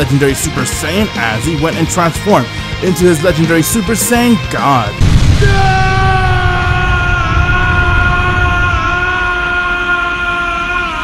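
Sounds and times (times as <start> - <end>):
man yelling: 4.4 - 11.0
deep rumbling energy effect: 5.0 - 9.4.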